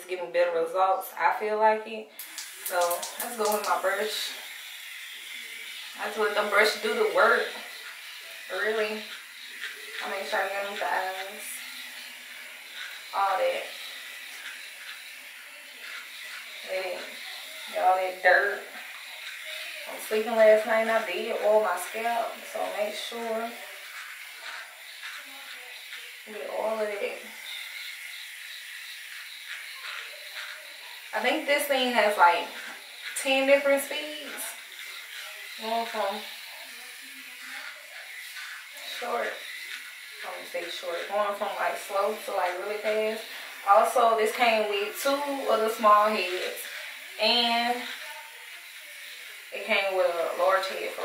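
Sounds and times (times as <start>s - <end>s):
facial cleansing brush buzzing: 2.2s - 51.0s.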